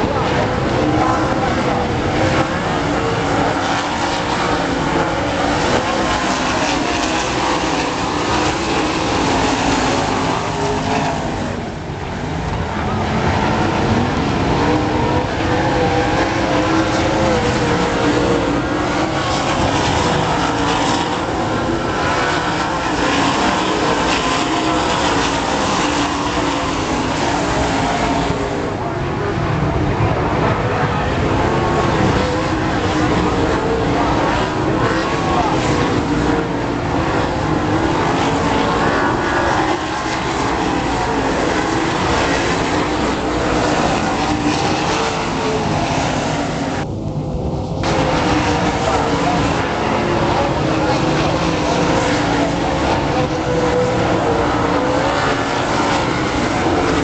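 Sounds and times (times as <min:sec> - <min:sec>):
race car engines: 0:00.0 - 0:57.0.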